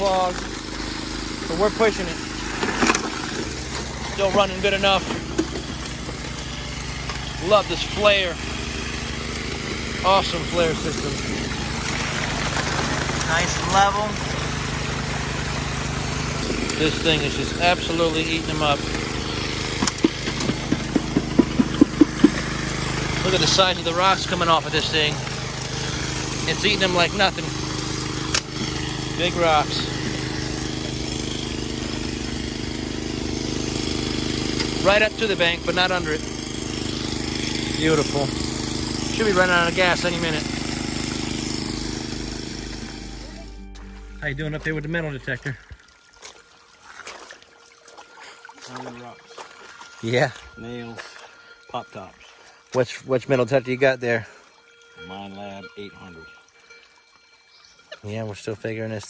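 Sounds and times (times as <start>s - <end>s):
water trickling over rocks: 0.0s - 32.2s, 44.7s - 59.0s
small gas engine running: 0.0s - 56.8s
rocks tumbling and knocking: 11.5s - 14.5s, 19.7s - 22.7s
footsteps splashing in water: 18.9s - 23.2s, 45.4s - 52.8s.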